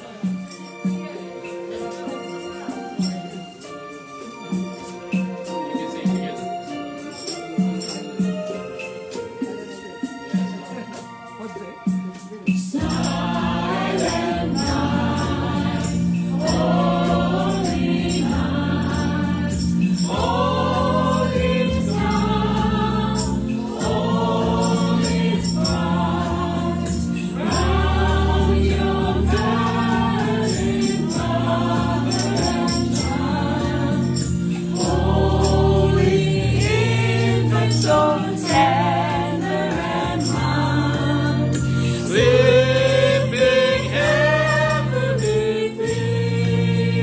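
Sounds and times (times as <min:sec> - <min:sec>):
steady percussion beat: 0:00.0 - 0:47.0
group singing gospel song: 0:12.5 - 0:47.0.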